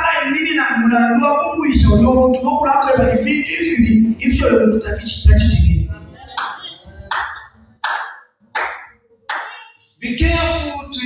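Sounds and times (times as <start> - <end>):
slow hand claps in a hall: 6.4 - 9.7.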